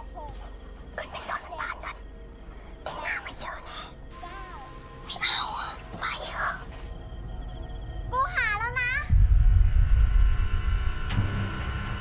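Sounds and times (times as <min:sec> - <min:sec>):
faint film score: 0:00.0 - 0:12.0.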